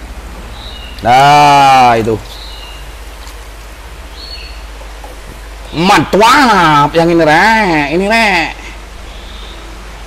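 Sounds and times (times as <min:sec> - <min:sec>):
rushing splashing water: 0:00.0 - 0:07.8
faint high chirp: 0:09.1 - 0:09.7.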